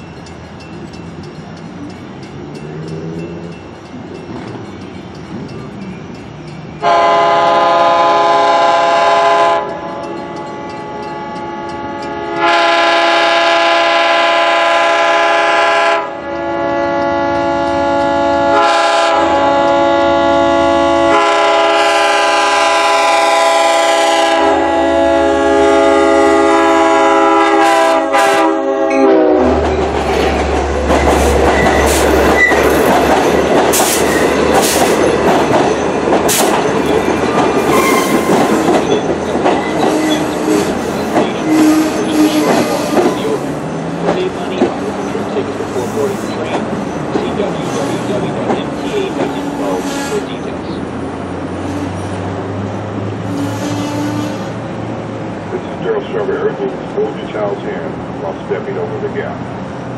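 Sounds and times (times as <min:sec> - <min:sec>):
train wheels clattering on rails: 0:00.0 - 0:07.6, 0:29.5 - 0:54.5
locomotive rumble: 0:00.0 - 0:59.9
locomotive air horn: 0:06.8 - 0:29.6, 0:37.6 - 0:38.8, 0:39.7 - 0:43.6, 0:47.5 - 0:48.3, 0:48.9 - 0:50.5, 0:51.6 - 0:52.2, 0:53.2 - 0:54.7.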